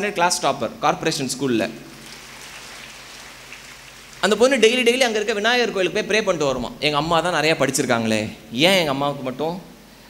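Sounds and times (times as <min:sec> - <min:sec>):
hall room noise hiss: 0:00.0 - 0:10.0.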